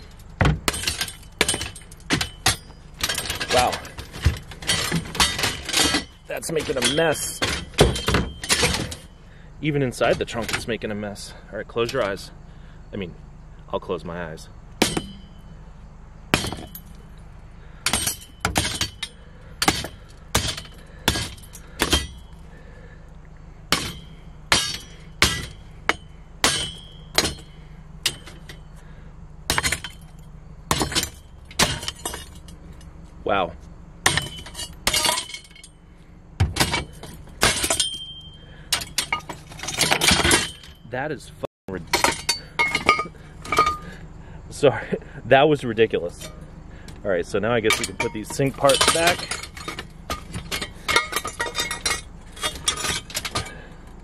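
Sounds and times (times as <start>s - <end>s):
clinking shards: 0.0s - 12.3s, 14.8s - 33.4s, 34.0s - 40.9s, 41.7s - 44.1s, 46.0s - 54.0s
hammer smashing ceramic sink: 14.8s - 15.4s, 16.4s - 16.8s, 17.9s - 22.2s, 23.7s - 27.5s, 29.5s - 30.0s, 30.7s - 32.4s, 34.0s - 35.6s.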